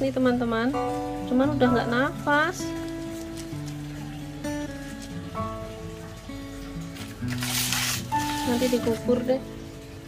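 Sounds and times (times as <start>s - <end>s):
slow background music: 0.0s - 10.0s
paper rustling: 2.8s - 4.0s, 6.9s - 9.1s.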